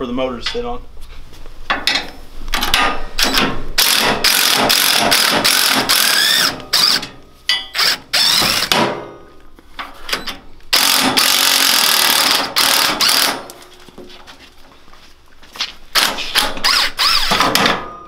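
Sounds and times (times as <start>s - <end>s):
impact wrench hammering: 1.8s - 9.2s, 10.7s - 13.5s, 15.9s - 18.0s.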